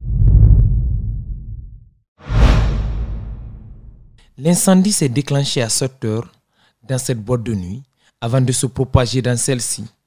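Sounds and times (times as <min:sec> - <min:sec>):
deep boom: 0:00.0 - 0:04.2
transition whoosh: 0:00.0 - 0:04.2.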